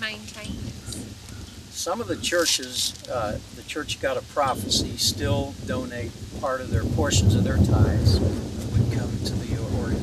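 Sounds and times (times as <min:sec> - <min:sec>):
wind buffeting microphone: 0:00.0 - 0:10.0
man speaking faintly: 0:01.8 - 0:10.0.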